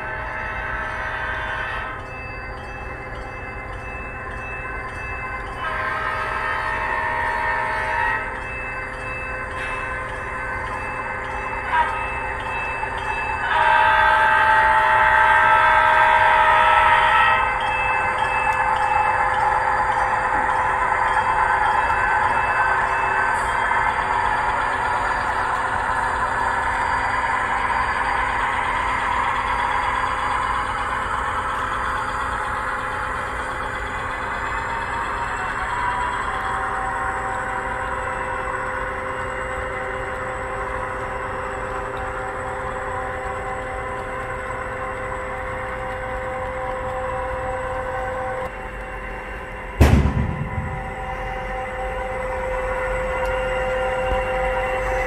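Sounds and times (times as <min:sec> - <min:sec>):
train rolling past: 0:00.0 - 0:55.0
model train horn blasts: 0:05.5 - 0:08.5, 0:11.7 - 0:12.2, 0:13.4 - 0:17.6.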